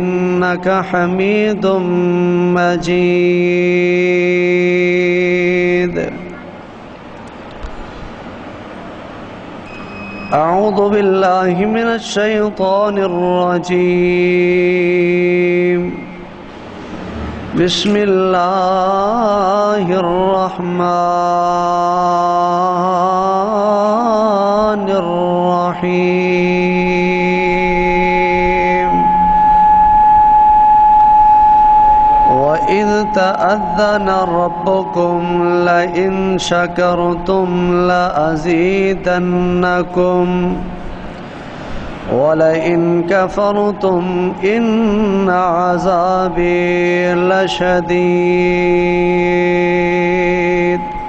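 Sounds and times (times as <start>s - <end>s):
amplified preaching: 0.0s - 6.6s, 10.3s - 29.7s, 32.3s - 51.0s
man reciting over loudspeakers: 0.0s - 6.6s, 10.3s - 29.2s, 32.3s - 41.0s, 42.0s - 51.0s
background hiss and rumble: 0.0s - 30.0s, 31.9s - 51.0s
faint high steady tone: 9.3s - 10.8s, 26.3s - 38.2s, 44.3s - 51.0s
microphone feedback whistle: 9.6s - 10.8s, 27.0s - 37.6s, 45.1s - 51.0s.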